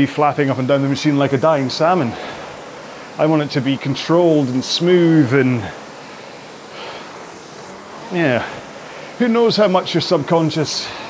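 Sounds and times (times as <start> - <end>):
rowing machine fan whooshing: 0.0 - 11.0.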